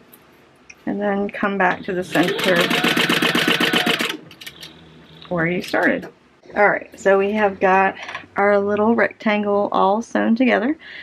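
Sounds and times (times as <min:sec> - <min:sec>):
sewing machine stitching: 0:01.9 - 0:04.8.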